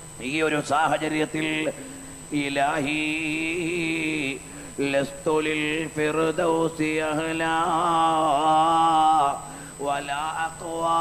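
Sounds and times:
man chanting in long held notes: 0.2 - 11.0.

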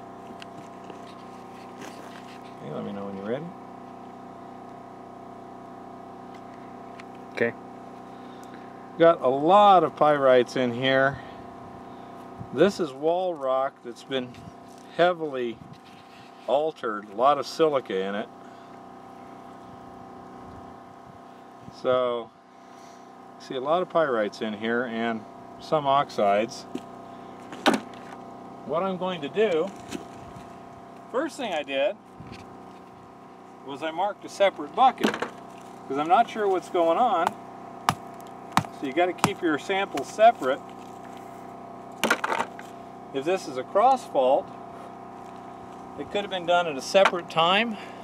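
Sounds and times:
motor humming: 24.4 - 48.0.

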